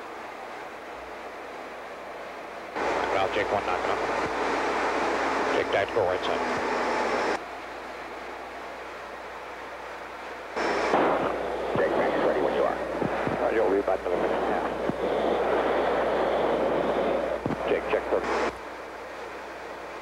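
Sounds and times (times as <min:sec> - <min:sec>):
radio transmission hiss: 0:02.7 - 0:07.4, 0:10.6 - 0:19.3
pilot's clipped radio voice: 0:02.8 - 0:04.2, 0:05.4 - 0:06.6, 0:11.7 - 0:15.0, 0:16.9 - 0:18.6.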